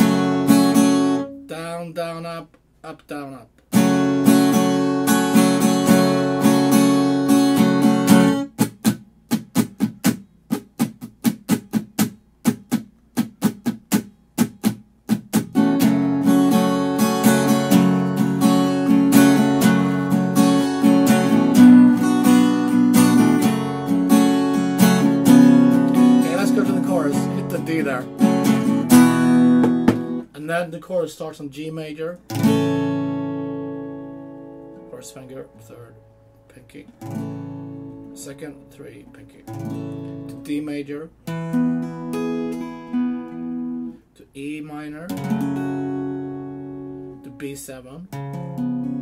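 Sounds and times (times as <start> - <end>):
acoustic guitar strumming: 0.0 - 2.4, 3.1 - 49.0.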